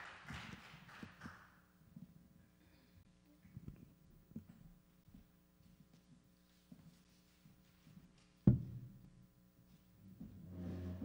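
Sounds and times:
low swelling sound: 0:10.4 - 0:11.0.

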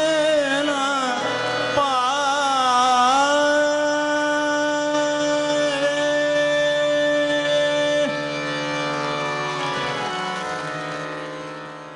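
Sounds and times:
man singing long note: 0:00.0 - 0:08.7
harmonium: 0:00.0 - 0:11.9
tanpura drone: 0:00.0 - 0:11.9.

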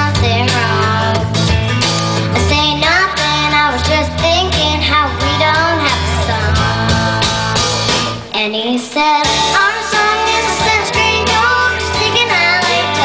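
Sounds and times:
girl singing into a microphone: 0:00.0 - 0:01.6, 0:02.3 - 0:07.6, 0:08.2 - 0:13.0
instrumental accompaniment with bass: 0:00.0 - 0:08.4, 0:09.1 - 0:13.0.

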